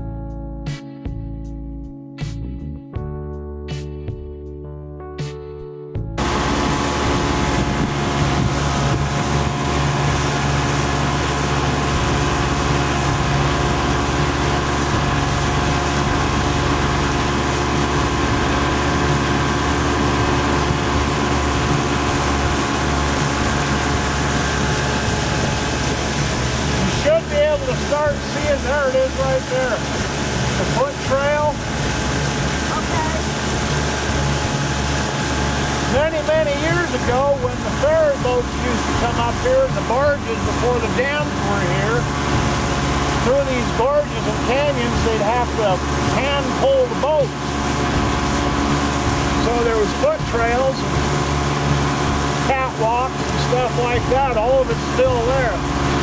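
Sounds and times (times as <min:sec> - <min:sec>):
motorboat engine running: 0:06.0 - 0:56.0
wind and water noise: 0:06.2 - 0:56.0
person's voice: 0:27.0 - 0:29.8, 0:30.6 - 0:31.6, 0:32.7 - 0:33.3, 0:35.9 - 0:42.1, 0:43.2 - 0:47.4, 0:49.4 - 0:50.9, 0:52.4 - 0:55.6.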